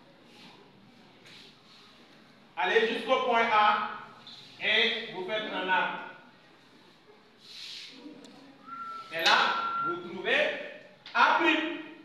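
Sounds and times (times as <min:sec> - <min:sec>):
steady whistle-like tone: 0:08.6 - 0:10.1.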